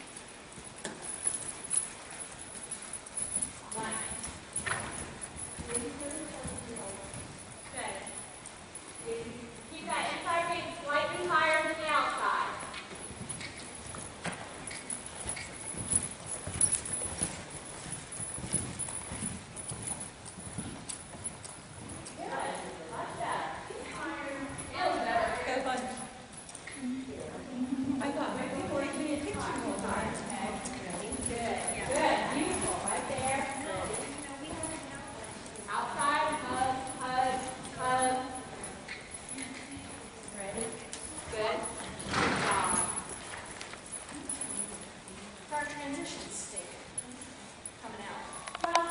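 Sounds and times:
horse hoofbeats on sand: 0.3s - 8.2s, 9.1s - 26.6s, 28.0s - 44.8s.

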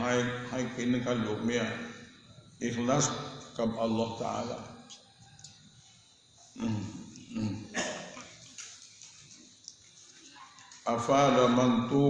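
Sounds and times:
man making low vocal sounds: 6.6s - 7.7s.

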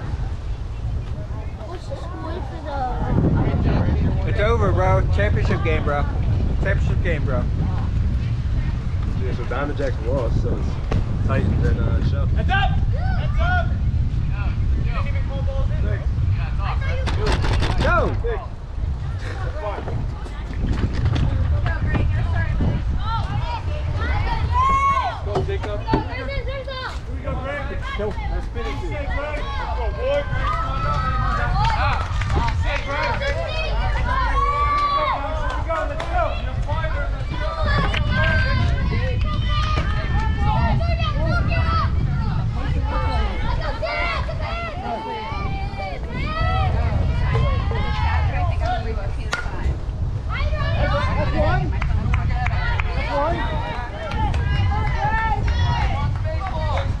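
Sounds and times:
wind buffeting microphone: 0.0s - 57.0s
people talking: 1.0s - 57.0s.

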